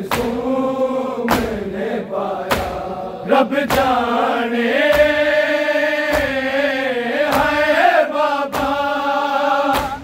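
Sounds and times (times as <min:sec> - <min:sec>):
men chanting in unison: 0:00.0 - 0:10.0
hands striking bare chests: 0:02.5 - 0:02.8, 0:03.6 - 0:04.1, 0:04.8 - 0:05.3.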